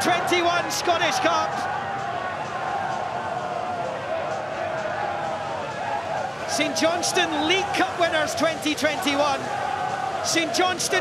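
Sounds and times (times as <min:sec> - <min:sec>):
general commotion: 0:00.0 - 0:11.0
group chanting: 0:01.5 - 0:08.3, 0:08.9 - 0:10.9.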